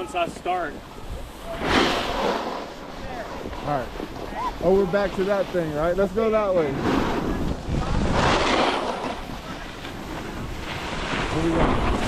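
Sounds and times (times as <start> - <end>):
snowboard scraping on snow: 0.0 - 12.0
wind buffeting microphone: 0.2 - 12.0.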